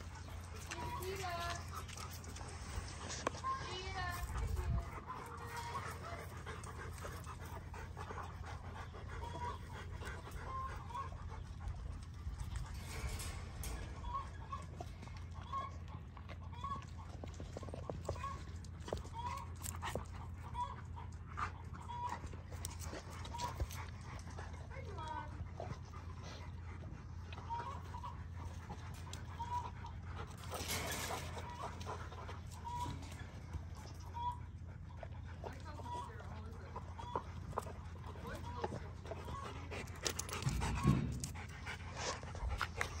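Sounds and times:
steady low hum: 0.0s - 43.0s.

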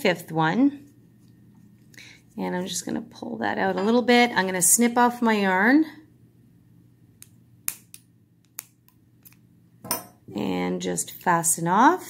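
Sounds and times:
scissors snipping yarn: 7.2s - 9.4s.

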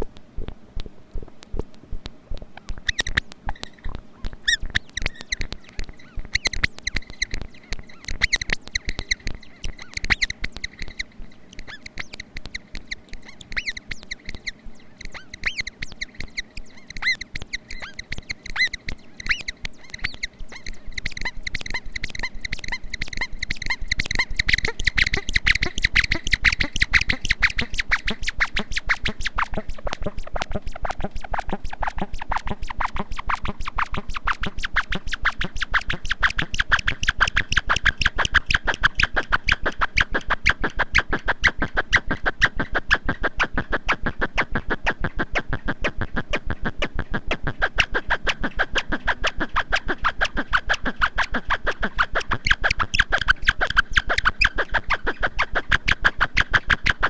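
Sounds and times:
clicky chirping synthesizer pulses: 0.0s - 57.0s.

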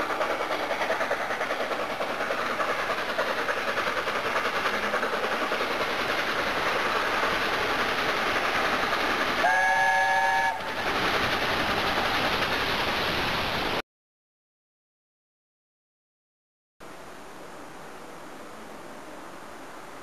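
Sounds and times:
steam train rushing: 0.0s - 13.8s
locomotive whistle chord: 9.4s - 10.6s.

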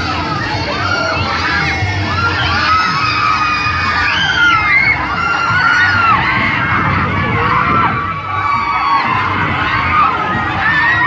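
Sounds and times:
riders screaming and shouting: 0.0s - 11.0s.

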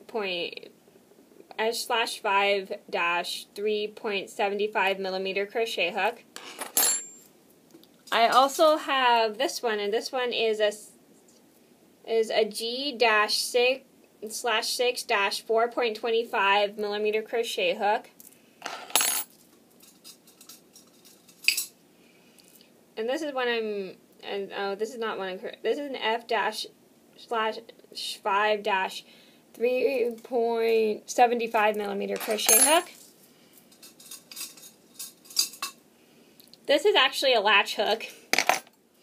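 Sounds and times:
metal crochet hooks clinking: 32.1s - 32.9s.

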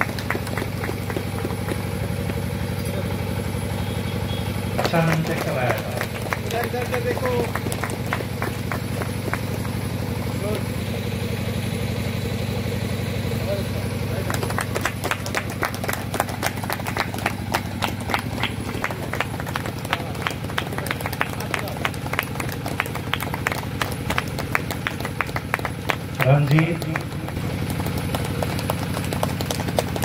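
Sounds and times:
audience clapping: 0.0s - 10.7s, 14.0s - 30.0s.

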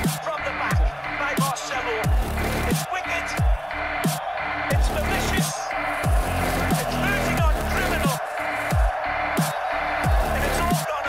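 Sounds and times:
electronic music with bass hits: 2.0s - 10.6s.

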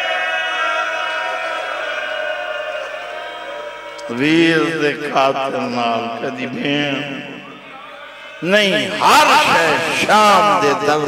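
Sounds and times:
man chanting over loudspeaker: 4.0s - 11.0s.

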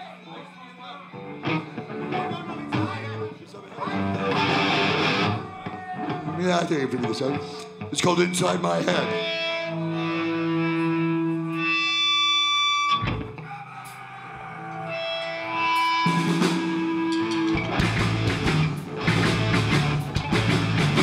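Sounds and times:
distorted electric guitar: 1.1s - 13.5s, 14.3s - 21.0s
punk rock band playing: 1.2s - 3.3s, 3.9s - 13.4s, 14.8s - 21.0s.

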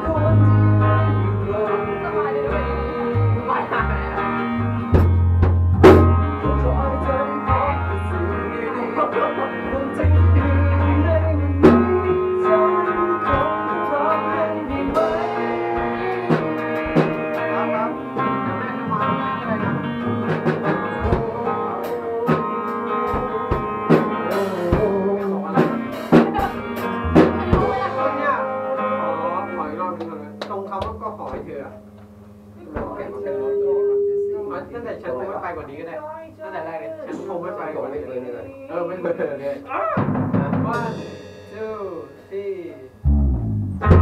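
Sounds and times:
drum kit: 0.0s - 28.6s, 39.8s - 44.0s
bass guitar: 0.0s - 35.1s, 43.0s - 44.0s
electric guitar: 0.0s - 35.1s, 43.0s - 44.0s.

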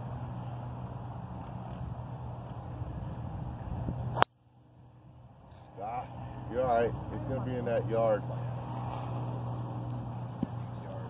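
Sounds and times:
low motor hum: 0.0s - 11.0s.

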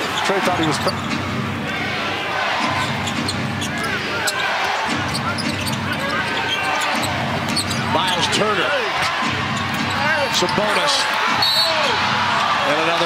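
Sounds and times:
crowd noise: 0.0s - 13.0s
sneakers squeaking on hardwood: 0.1s - 1.3s, 2.7s - 8.3s
basketball bouncing: 4.8s - 8.2s.

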